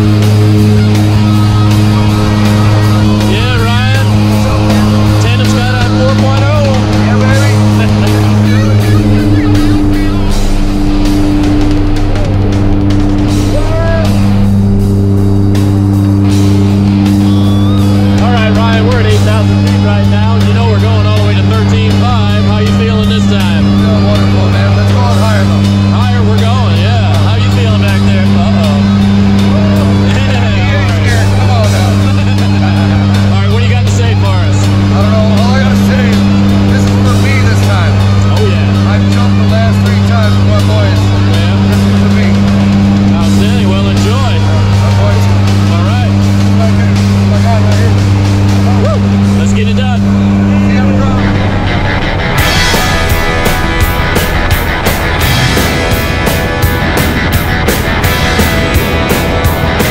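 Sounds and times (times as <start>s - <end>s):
indistinct voices: 0.0s - 59.9s
plane engines and propellers droning: 0.0s - 59.9s.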